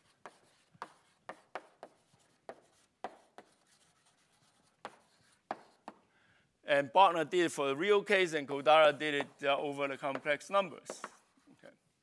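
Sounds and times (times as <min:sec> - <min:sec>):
chalk tapping on blackboard: 0:00.0 - 0:06.0, 0:10.0 - 0:11.4.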